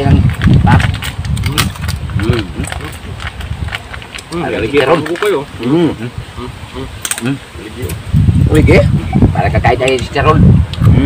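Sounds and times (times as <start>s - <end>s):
murmured voices: 0.0s - 11.0s
crab shells cracking: 0.2s - 5.7s, 6.9s - 7.3s.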